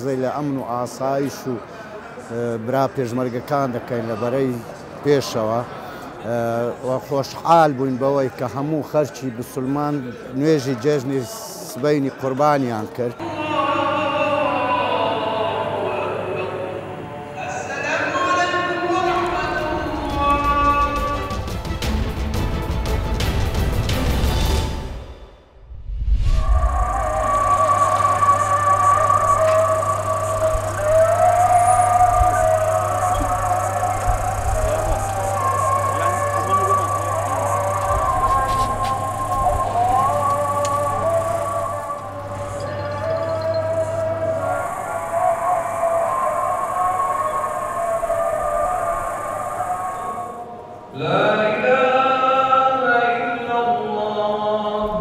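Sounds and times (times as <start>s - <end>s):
steady low hum: 25.5s - 50.9s
group of voices chanting: 26.3s - 52.2s.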